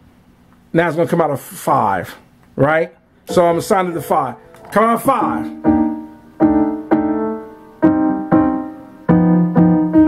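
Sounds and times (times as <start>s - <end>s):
piano-like chords: 3.2s - 10.0s.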